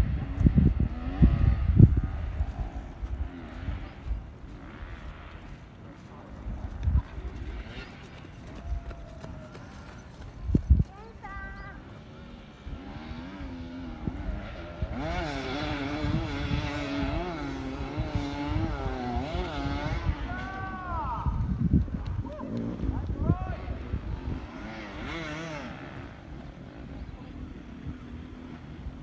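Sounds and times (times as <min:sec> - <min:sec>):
distant dirt bike engines revving: 0:00.0 - 0:29.0.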